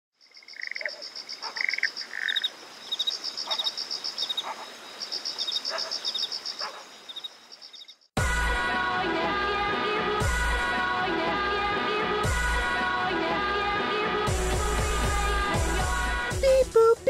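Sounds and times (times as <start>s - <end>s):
frogs croaking and chirping: 0.2s - 8.1s
insects pulsing trill: 0.2s - 8.1s.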